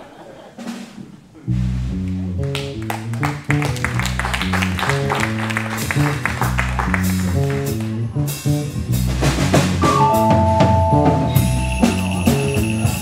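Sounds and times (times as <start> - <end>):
electric bass line: 1.5 - 13.0
jazz fusion band playing: 1.5 - 13.0.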